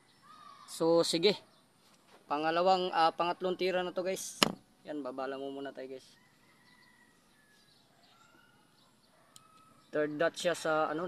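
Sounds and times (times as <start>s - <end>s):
distant bird calls: 0.0s - 11.0s.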